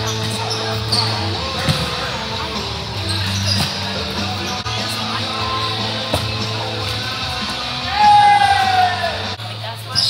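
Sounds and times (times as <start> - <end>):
voices: 0.0 - 10.0.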